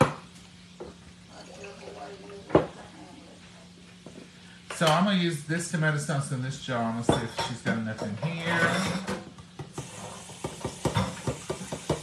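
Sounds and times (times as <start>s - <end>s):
faint steady hum: 0.0s - 12.0s
kitchenware knocks: 7.1s - 12.0s.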